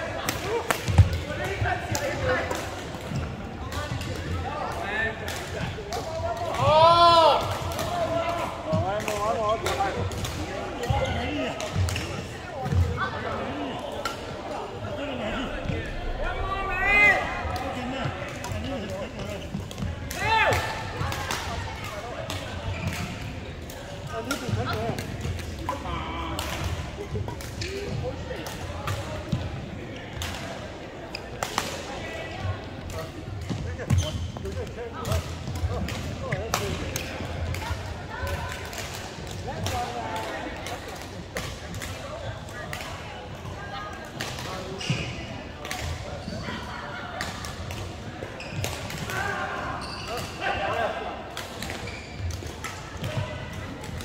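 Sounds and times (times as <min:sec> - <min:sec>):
sneakers squeaking on court floor: 0:49.8 - 0:50.4, 0:51.9 - 0:52.4.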